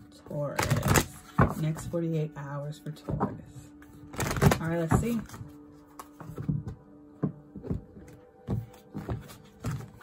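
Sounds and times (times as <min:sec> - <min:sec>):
faint background music: 0:00.0 - 0:10.0
cards being shuffled: 0:00.6 - 0:01.8, 0:04.0 - 0:06.6.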